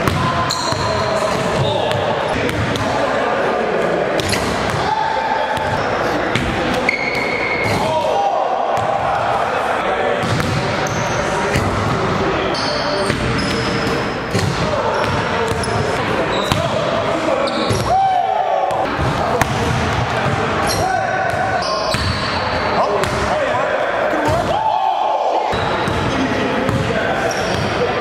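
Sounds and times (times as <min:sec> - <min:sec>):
voices and shouts echoing: 0:00.0 - 0:28.0
sneaker squeaks: 0:00.2 - 0:02.1, 0:06.7 - 0:07.9, 0:10.2 - 0:11.6, 0:12.5 - 0:16.8, 0:17.4 - 0:17.9, 0:20.6 - 0:23.1, 0:26.7 - 0:27.8
basketballs bouncing on wooden floor: 0:26.7 - 0:26.9.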